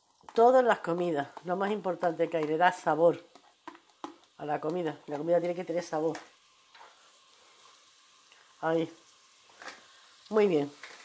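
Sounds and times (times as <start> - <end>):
onion sizzling in oil: 0.0 - 11.0.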